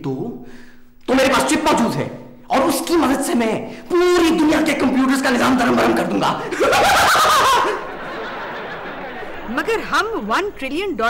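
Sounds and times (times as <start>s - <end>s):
steady background noise: 0.0s - 11.0s
man's theatrical villain laugh: 6.4s - 9.5s.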